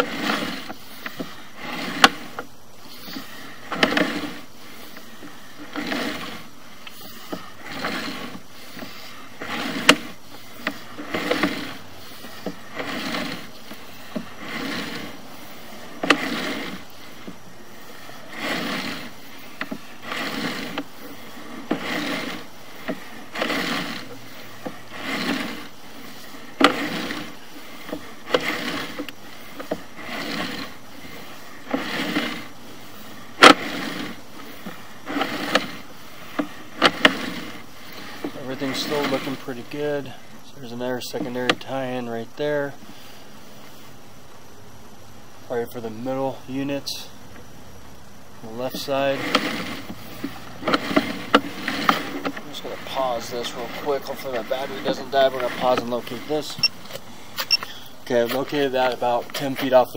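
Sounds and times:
cable scraping swish: 0:00.0 - 0:40.1, 0:48.5 - 0:56.7
background hiss: 0:00.0 - 0:59.9.

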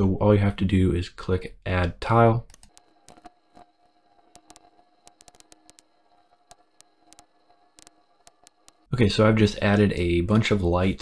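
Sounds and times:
faint steady hum: 0:00.0 - 0:11.0
computer mouse clicking: 0:02.4 - 0:03.7, 0:04.3 - 0:08.9.

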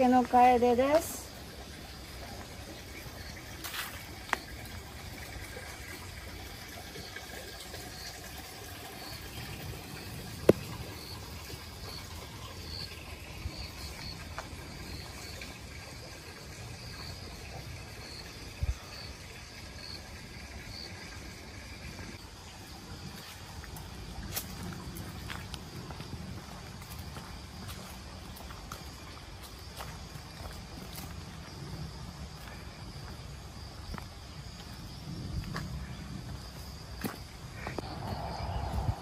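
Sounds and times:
insect chirping: 0:00.0 - 0:39.0
low steady rumble: 0:37.8 - 0:39.0.

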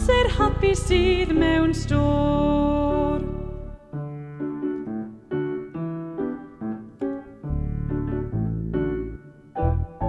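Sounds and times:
keyboard melody: 0:00.0 - 0:10.0.

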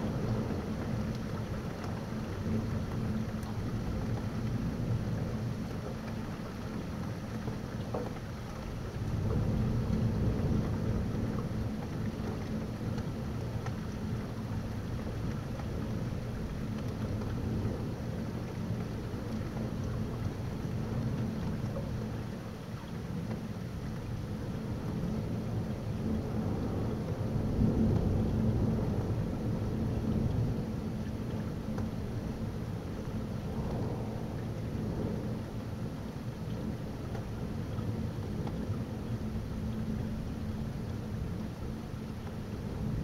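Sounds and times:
steady rain: 0:00.0 - 0:43.0
rolling thunder: 0:33.3 - 0:36.0.

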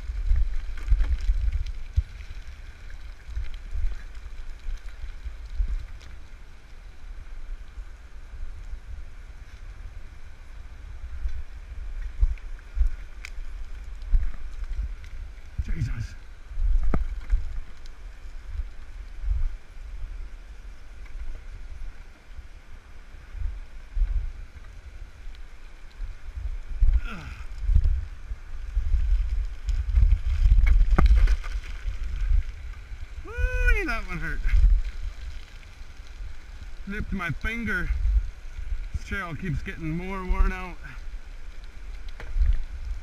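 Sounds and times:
wind buffeting microphone: 0:23.1 - 0:43.0
river rushing: 0:33.1 - 0:34.8.

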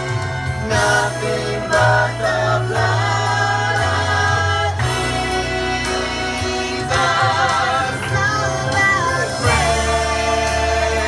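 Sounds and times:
low musical accompaniment: 0:00.0 - 0:11.0
woman and man singing: 0:00.6 - 0:11.0.

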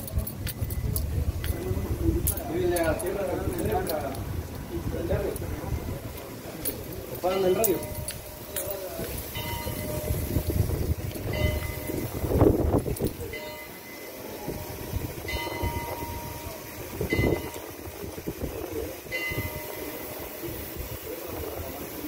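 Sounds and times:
rumbling street noise: 0:00.0 - 0:22.0.

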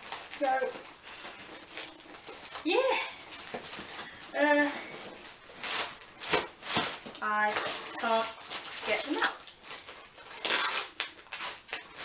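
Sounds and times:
plastic packaging crinkling: 0:00.0 - 0:12.0.

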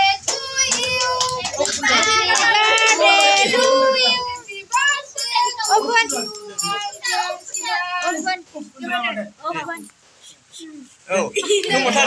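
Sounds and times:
group singing: 0:00.0 - 0:09.0
children calling and chattering: 0:00.0 - 0:12.0.

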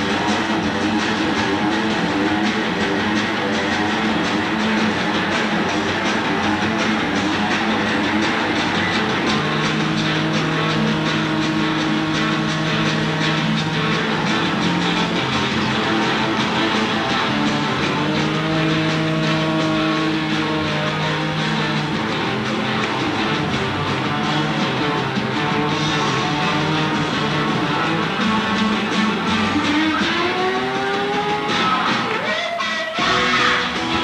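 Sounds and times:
distorted electric guitars: 0:00.0 - 0:34.0
steady drum beat: 0:00.0 - 0:34.0.

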